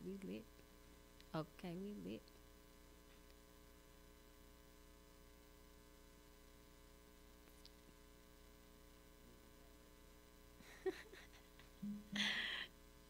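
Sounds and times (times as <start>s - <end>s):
faint electrical mains hum: 0.0s - 13.0s.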